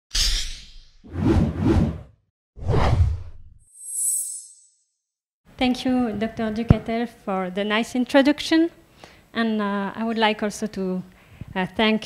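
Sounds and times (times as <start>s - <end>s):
whooshes: 1.1s - 3.6s.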